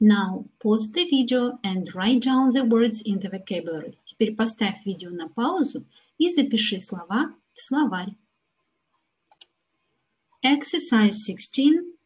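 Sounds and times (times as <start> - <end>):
computer mouse clicks: 8.9 - 9.6.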